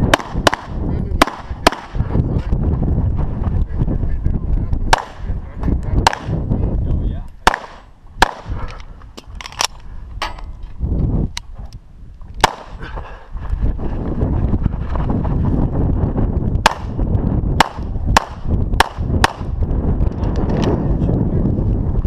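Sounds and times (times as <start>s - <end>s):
low rumbling noise: 0.0s - 22.0s
pistol shots: 0.1s - 2.0s, 4.9s - 5.2s, 6.0s - 6.4s, 7.4s - 8.5s, 12.4s - 12.8s, 16.6s - 17.0s, 17.6s - 19.5s.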